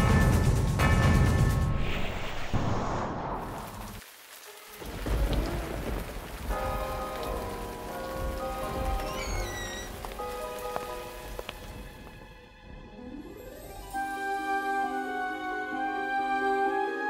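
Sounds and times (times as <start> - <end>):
steady rain: 2.6 - 12.5
thunder rumble: 4.8 - 12.0.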